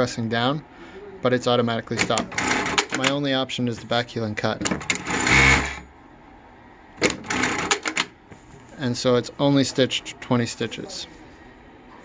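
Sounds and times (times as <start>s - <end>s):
sewing machine running: 2.0s - 3.1s, 4.8s - 5.8s, 7.0s - 8.1s.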